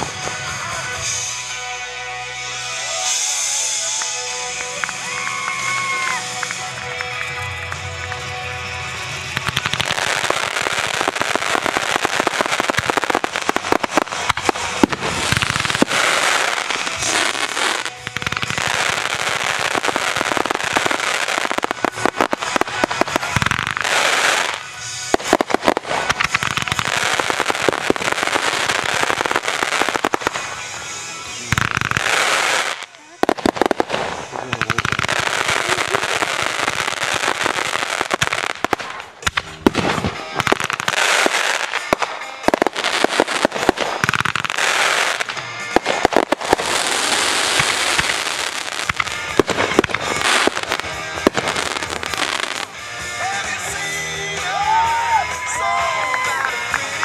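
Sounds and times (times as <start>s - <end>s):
fireworks bursting: 0.0s - 1.5s, 2.7s - 57.0s.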